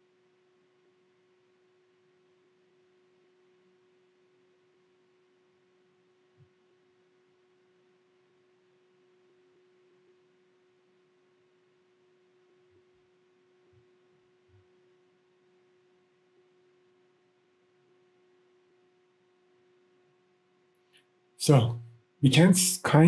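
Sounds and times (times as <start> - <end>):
faint electrical hum: 0.0 - 23.0.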